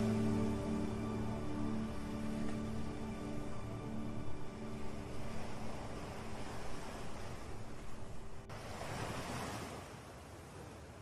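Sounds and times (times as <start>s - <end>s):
ocean wave washing in: 0.0s - 10.0s.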